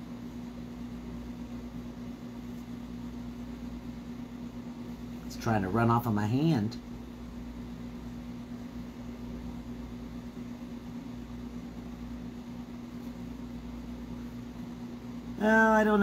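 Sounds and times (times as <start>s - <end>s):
steady room hum: 0.0s - 16.0s.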